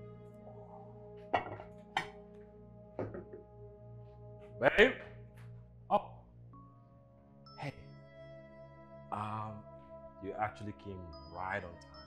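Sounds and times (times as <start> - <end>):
soft background music: 0.0 - 12.0
dishes clinking on a table: 1.3 - 2.2, 3.0 - 3.4.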